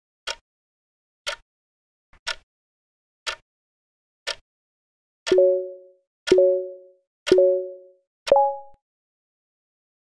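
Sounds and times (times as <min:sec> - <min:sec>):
pitched timer plonks: 0:05.3 - 0:08.8.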